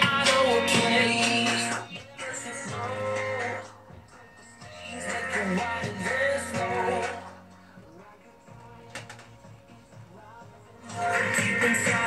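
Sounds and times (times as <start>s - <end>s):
pop song from speaker: 0.0s - 12.0s.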